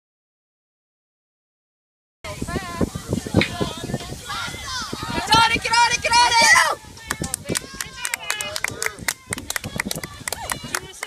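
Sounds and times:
voices talking and calling out: 2.3 - 11.0.

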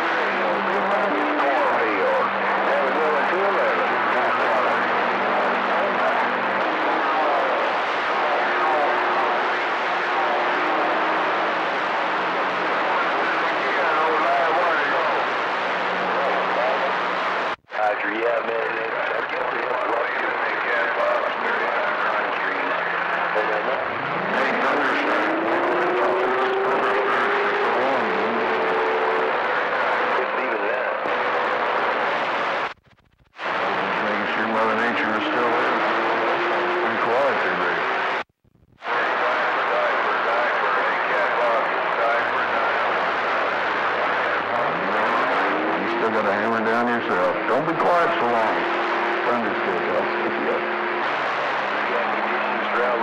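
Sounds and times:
faint unreadable radio voices: 0.0 - 32.8, 33.4 - 53.0
radio band hiss: 0.0 - 53.0.

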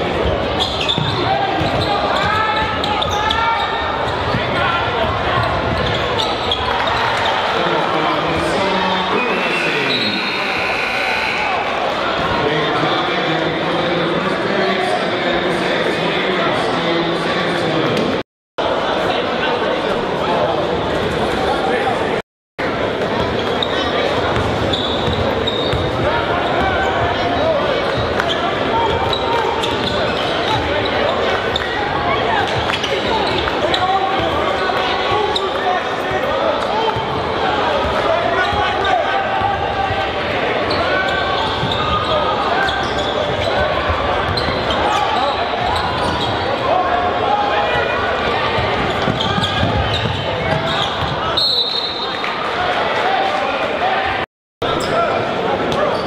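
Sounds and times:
crowd chatter and shouts: 0.0 - 56.0.

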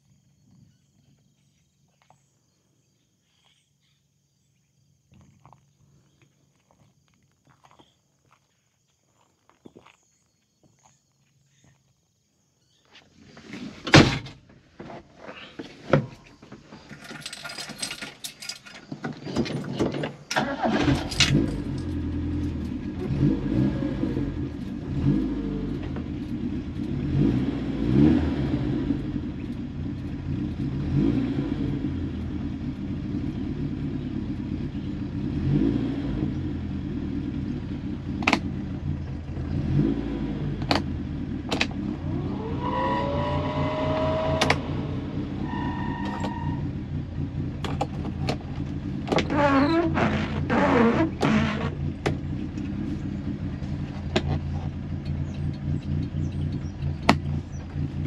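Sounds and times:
car engine idling and revving: 20.3 - 58.0.

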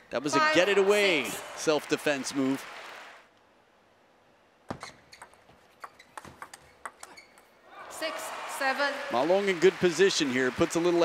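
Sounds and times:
crowd noise: 0.3 - 3.3, 7.6 - 11.0
table tennis ball hits: 4.7 - 7.5.

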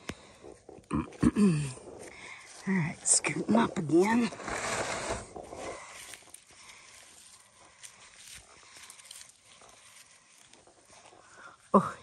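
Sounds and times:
hands digging through soil: 0.0 - 11.7
rustling on dry grass mulch: 0.0 - 12.0.

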